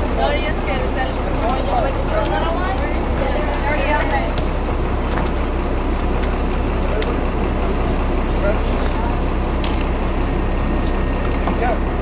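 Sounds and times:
people talking: 0.0s - 4.8s, 6.4s - 12.0s
bus engine idling: 0.0s - 12.0s.

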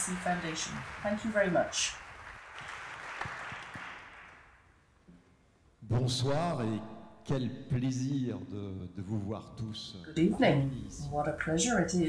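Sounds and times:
audience applause: 0.0s - 4.7s.

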